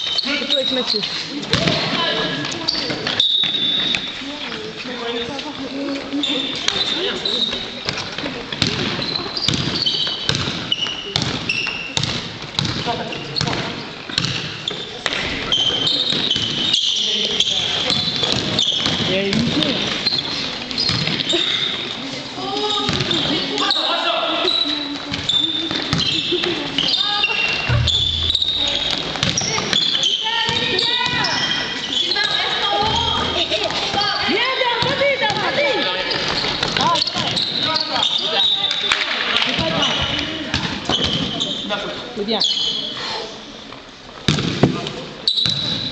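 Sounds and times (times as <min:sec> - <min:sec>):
sneakers squeaking: 0:00.0 - 0:21.9, 0:22.6 - 0:38.8, 0:39.6 - 0:43.0, 0:45.2 - 0:45.9
basketball bouncing: 0:27.7 - 0:29.7.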